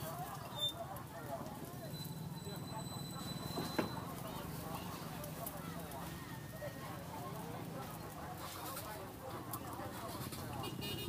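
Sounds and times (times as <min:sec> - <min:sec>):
people talking: 0:00.0 - 0:11.0
gas burner noise: 0:00.1 - 0:10.7.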